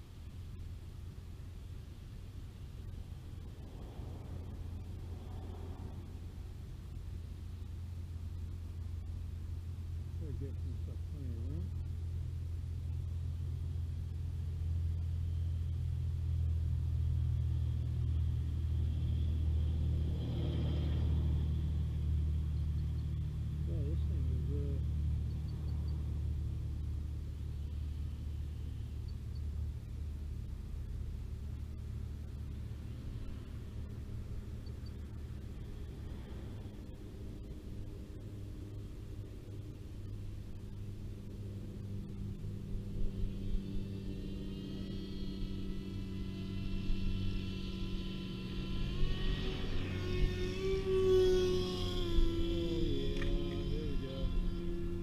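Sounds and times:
electric motor and propeller whine: 0.0 - 55.0
steady low rumble: 0.0 - 55.0.

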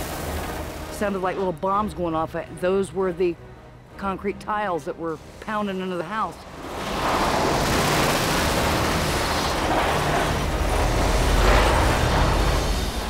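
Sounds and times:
hurricane wind blowing hard: 6.5 - 13.0.

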